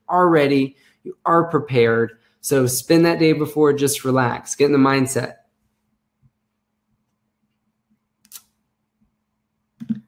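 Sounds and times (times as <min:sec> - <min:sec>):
person speaking: 0:00.0 - 0:05.5, 0:09.8 - 0:10.0.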